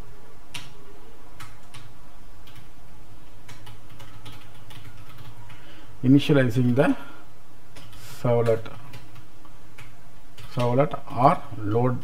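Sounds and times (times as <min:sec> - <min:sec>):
steady low hum: 0:00.0 - 0:12.0
computer keyboard typing: 0:00.5 - 0:00.8, 0:01.4 - 0:02.7, 0:03.4 - 0:05.6, 0:07.7 - 0:10.9.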